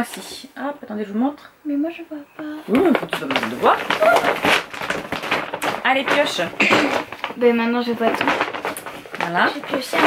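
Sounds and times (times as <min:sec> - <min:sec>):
plastic bag crinkling: 0:02.4 - 0:10.0.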